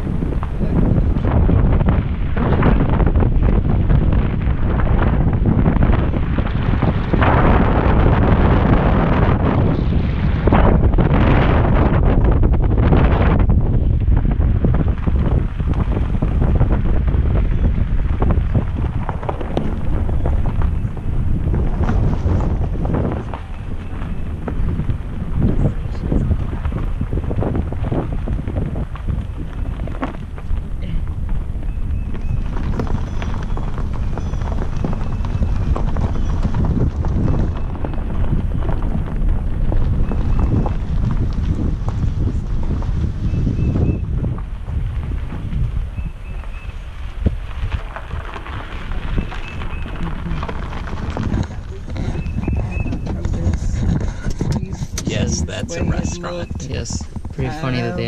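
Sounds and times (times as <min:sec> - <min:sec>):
wind buffeting microphone: 0:00.0 - 0:58.0
tyres crunching over gravel: 0:14.3 - 0:54.6.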